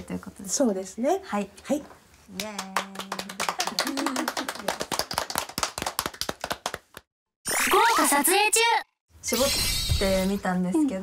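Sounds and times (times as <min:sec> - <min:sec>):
people clapping: 0:02.3 - 0:07.1.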